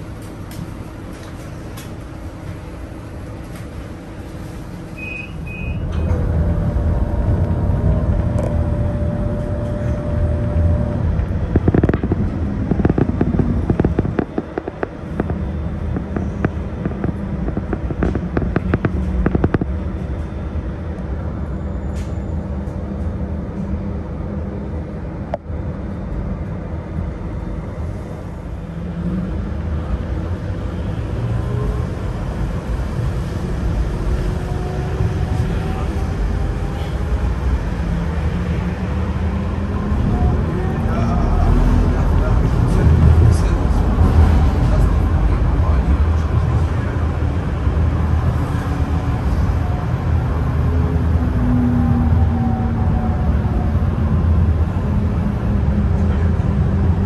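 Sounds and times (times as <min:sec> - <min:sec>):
road traffic: 0:00.0 - 0:57.0.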